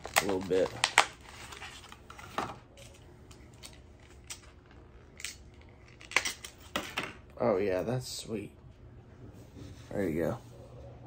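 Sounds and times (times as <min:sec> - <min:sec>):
plastic package crackling: 0:00.0 - 0:06.6.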